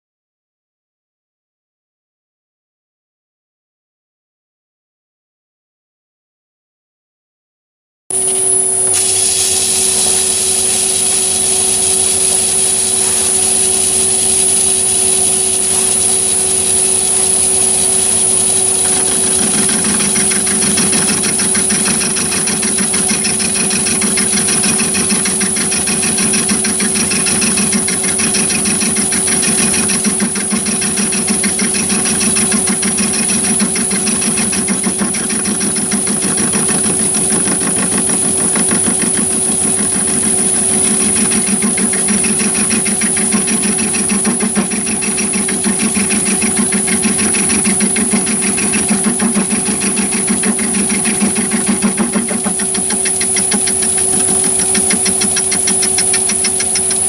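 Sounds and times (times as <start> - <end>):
high machine whine: 8.1 - 57.0
lathe milling hum: 8.1 - 57.0.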